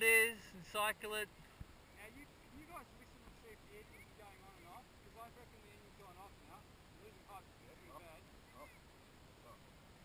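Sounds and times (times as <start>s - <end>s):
faint bird chirps and warbling: 7.7s - 9.7s.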